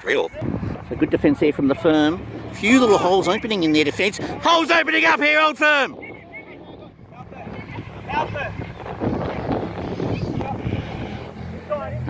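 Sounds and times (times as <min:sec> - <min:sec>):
rushing noise on microphone: 0:06.0 - 0:12.0.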